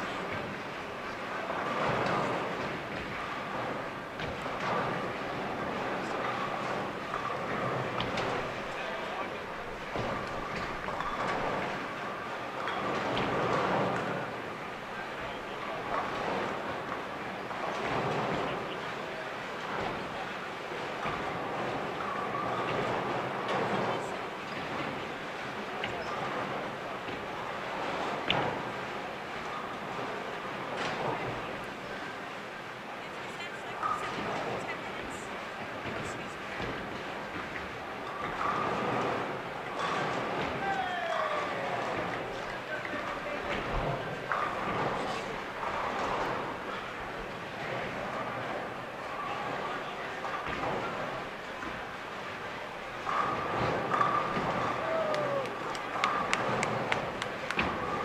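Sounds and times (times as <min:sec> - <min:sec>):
bowling pins clattering: 0:00.0 - 0:32.8, 0:33.7 - 0:58.0
bowling balls rolling: 0:00.0 - 0:33.1, 0:33.7 - 0:58.0
murmur of many voices: 0:00.0 - 0:58.0.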